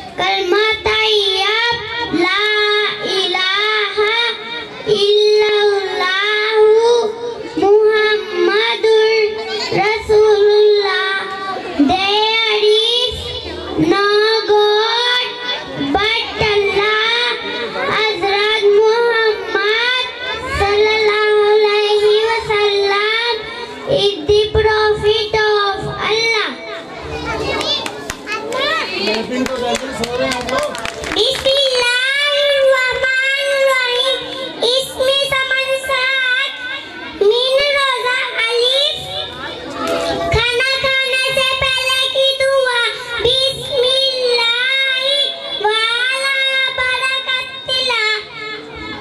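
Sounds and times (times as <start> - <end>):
child chanting a prayer: 0.0 - 29.3, 30.0 - 49.0.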